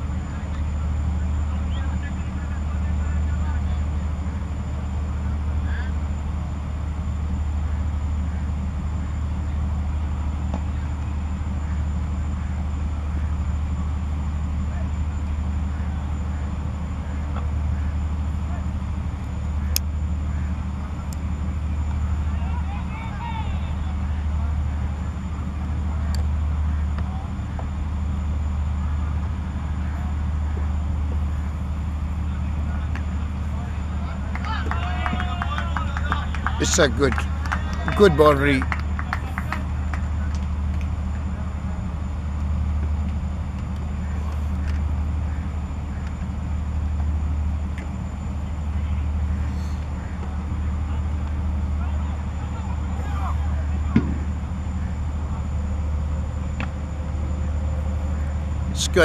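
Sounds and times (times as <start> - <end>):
faint distant voices: 0.0 - 6.1
steady low rumble: 0.0 - 59.0.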